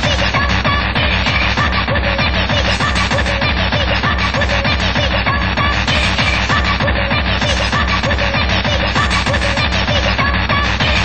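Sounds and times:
fast electronic rave music on radio: 0.0s - 11.0s.

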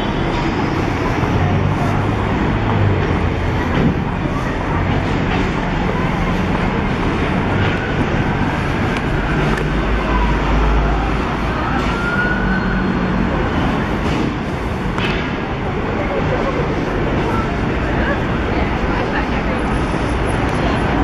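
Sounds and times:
city street traffic: 0.0s - 21.0s
heavy vehicle rumbling past: 0.0s - 21.0s.

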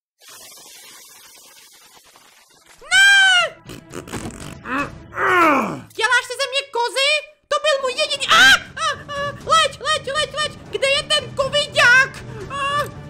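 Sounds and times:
cartoon creature crying: 2.8s - 3.6s.

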